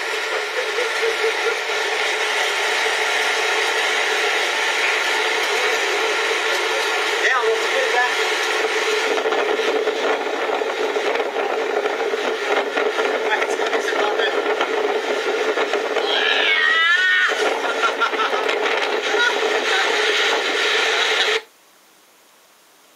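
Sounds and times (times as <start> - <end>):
ventilation blower humming: 0.0 - 21.5.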